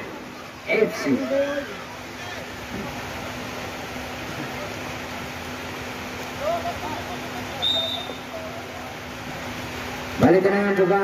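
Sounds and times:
distant shouts: 0.0 - 3.8, 6.3 - 9.2
referee's whistle blast: 7.6 - 8.3.

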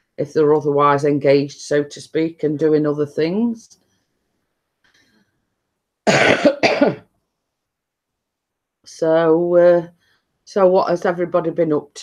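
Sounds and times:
woman coughing: 6.1 - 7.1.

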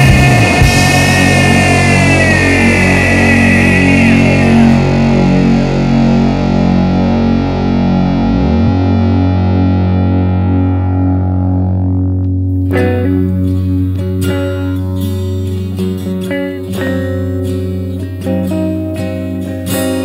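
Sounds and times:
low drone: 0.0 - 14.2
distorted electric guitar chords: 0.0 - 20.0.

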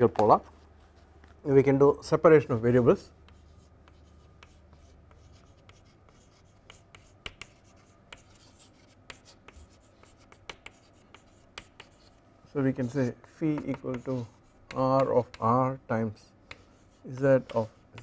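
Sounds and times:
chalk scratching on chalkboard: 2.4 - 15.6, 16.5 - 18.0
chalk tapping on chalkboard: 3.2 - 12.2, 12.8 - 15.6, 16.4 - 18.0.

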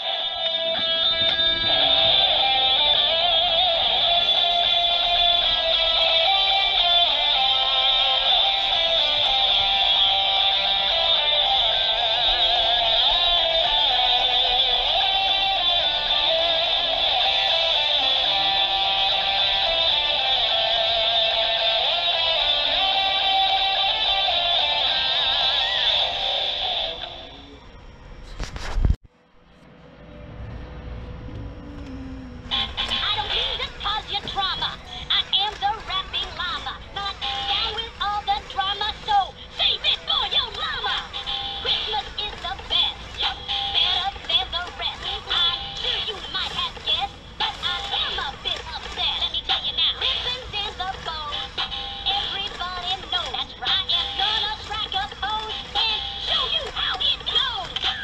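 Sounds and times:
plush toy singing: 0.0 - 27.2, 31.6 - 58.0
toy guitar music: 0.0 - 27.2, 31.8 - 58.0.

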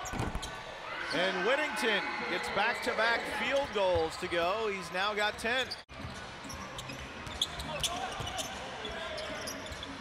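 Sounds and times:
sneaker squeaks: 5.6 - 10.0.

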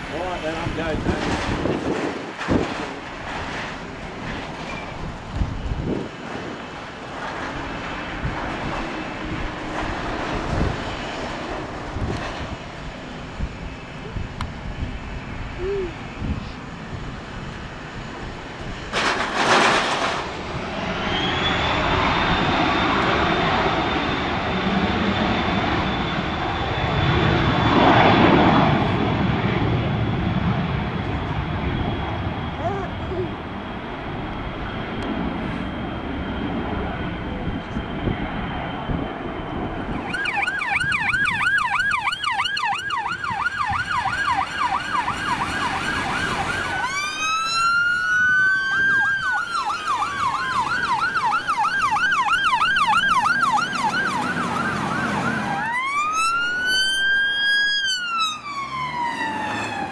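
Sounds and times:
jet engines whining: 0.0 - 59.9
siren wail: 20.0 - 31.8, 38.8 - 59.9
siren yelp: 39.8 - 59.9.

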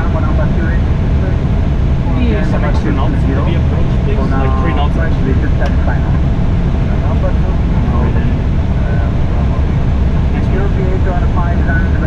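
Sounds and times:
faint voices: 0.0 - 12.0
low rumble of airflow and engines: 0.0 - 12.0.

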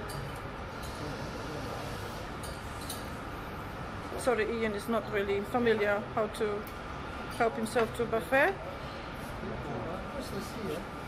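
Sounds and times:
food hall background din: 0.0 - 11.0.

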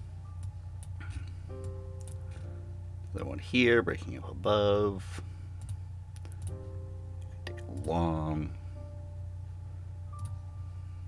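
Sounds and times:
faint background music: 0.0 - 11.0
steady low hum: 0.0 - 11.0
computer mouse clicks: 5.6 - 6.6.

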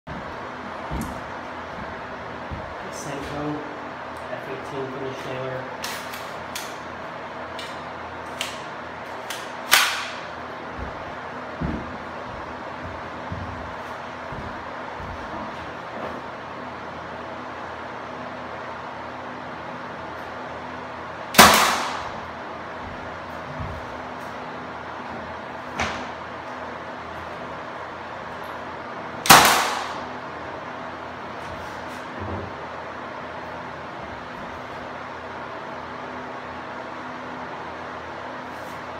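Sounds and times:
nail gun shots: 9.3 - 10.3, 21.3 - 22.2, 29.2 - 30.1.

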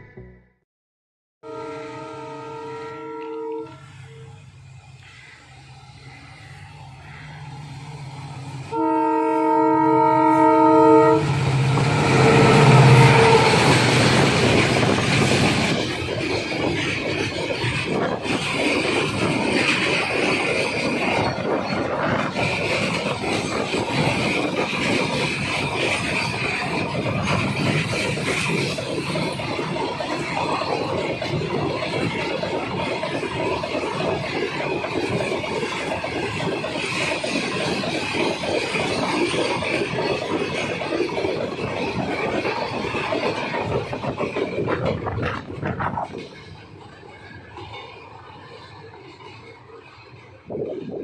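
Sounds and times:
locomotive horn blast: 1.4 - 3.8, 8.7 - 13.8
diesel locomotive engine: 1.4 - 51.0
train wheels clattering over rail joints: 11.6 - 51.0.

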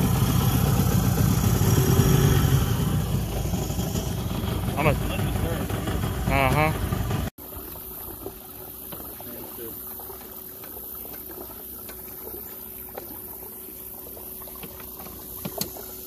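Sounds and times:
water lapping against a hull: 0.0 - 16.0
small clicks and bubbling: 7.4 - 16.0.

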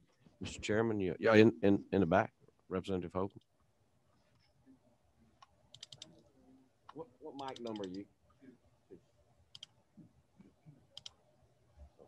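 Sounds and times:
faint clicks: 5.4 - 6.3, 9.5 - 9.8, 10.4 - 11.2.

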